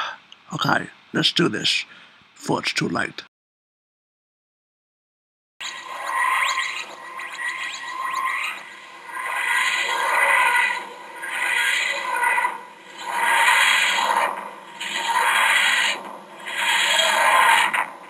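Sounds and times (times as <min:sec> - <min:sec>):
grinding wheezing sound effect: 0:05.6 - 0:18.0.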